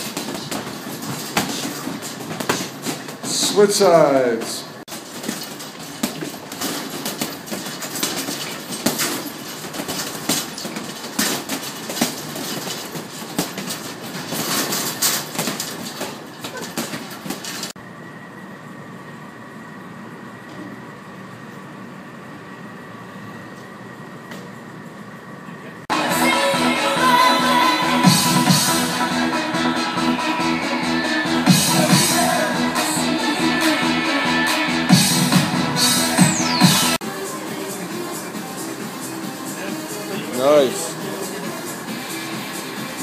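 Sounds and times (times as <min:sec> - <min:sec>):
punches on heavy bags: 0:00.0 - 0:03.8, 0:04.9 - 0:17.7
noisy room: 0:00.0 - 0:43.0.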